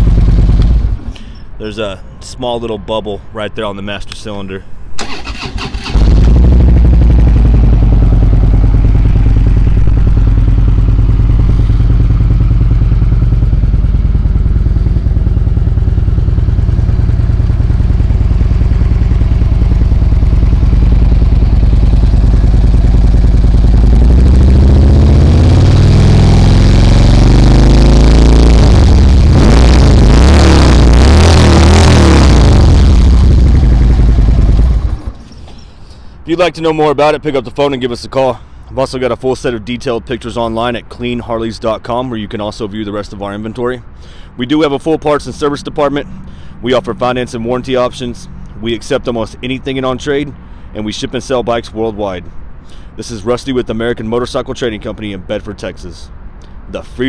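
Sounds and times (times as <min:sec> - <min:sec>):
motorcycle engine revving: 0:00.0 - 0:01.1, 0:05.0 - 0:35.3
motorcycle engine idling: 0:00.0 - 0:01.4, 0:05.0 - 0:30.1, 0:32.3 - 0:35.3
motorcycle engine starting: 0:00.0 - 0:01.4, 0:05.0 - 0:36.0.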